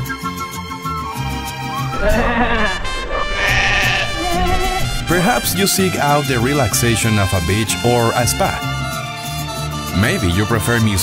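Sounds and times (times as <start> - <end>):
goat bleating: 1.9 - 5.0
background music: 2.7 - 11.0.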